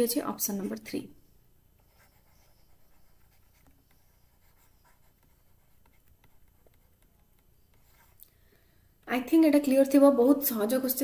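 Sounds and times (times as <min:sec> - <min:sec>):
stylus scratching on pen tablet: 0:00.5 - 0:01.0, 0:01.8 - 0:08.2.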